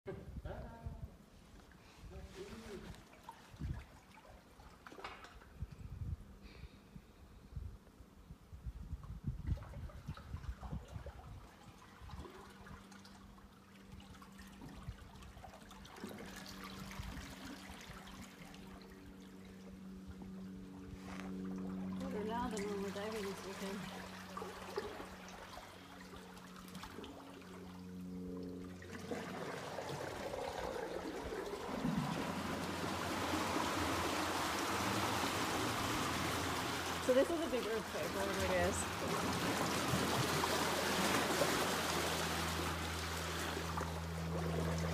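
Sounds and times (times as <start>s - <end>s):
water surging against rock walls: 28.9s - 44.9s.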